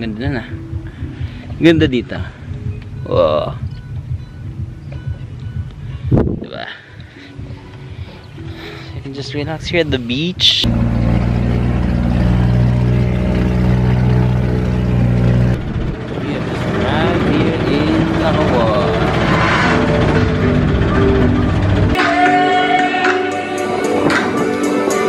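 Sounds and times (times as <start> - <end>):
boat engine droning: 9.9 - 24.1.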